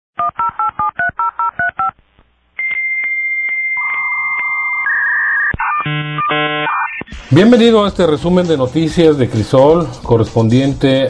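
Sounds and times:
high electronic tone with clicks: 2.6 - 7.3
modem hissing tones: 2.6 - 7.4.

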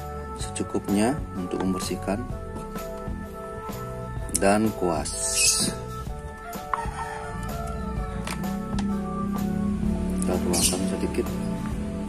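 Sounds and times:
background music with steady tones: 0.0 - 12.0.

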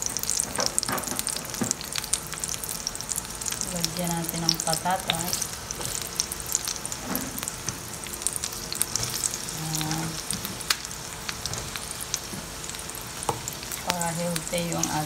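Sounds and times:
onions sizzling in hot oil: 0.0 - 15.0.

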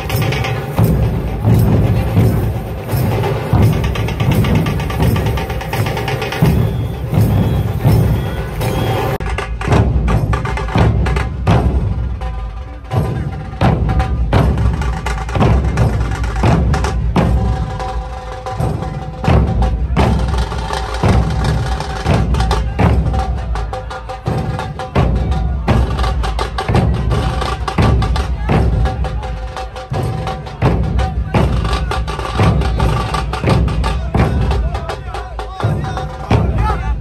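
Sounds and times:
deep dhol drum beats: 0.0 - 37.0
tasha drum roll: 0.0 - 37.0.

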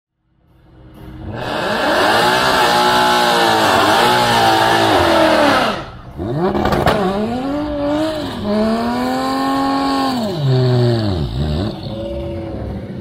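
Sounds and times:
drag car engine revving: 1.2 - 13.0
tyres spinning and squealing: 1.4 - 13.0.

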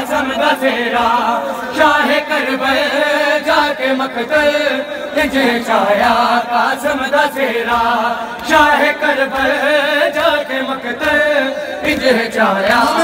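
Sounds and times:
voices chanting mournfully: 0.0 - 13.0.

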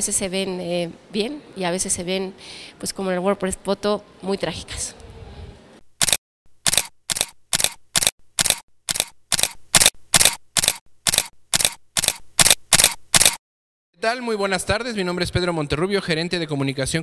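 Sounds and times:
camera shutter clicking: 6.0 - 13.4.

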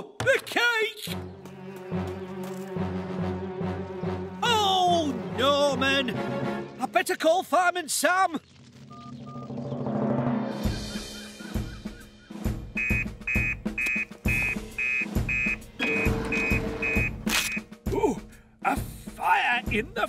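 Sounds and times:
cartoon music with drum beat: 9.2 - 20.0
teleprinter beeps: 12.8 - 17.6.

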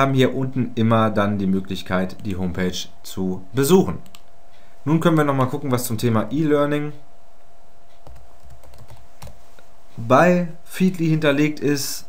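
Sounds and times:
keyboard keystrokes: 8.0 - 9.4.

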